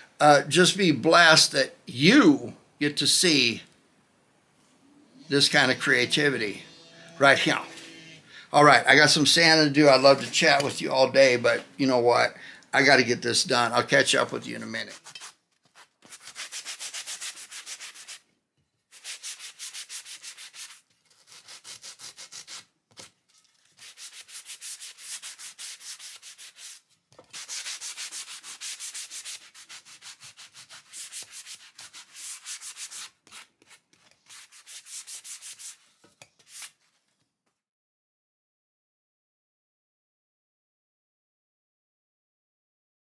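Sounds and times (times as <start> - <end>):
sandpaper rubbing on wood: 14.7 - 18.2, 18.9 - 22.7, 23.8 - 36.8.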